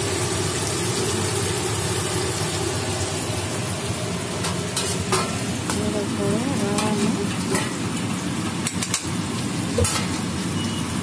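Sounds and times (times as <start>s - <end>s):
potatoes sizzling in hot oil: 0.0s - 11.0s.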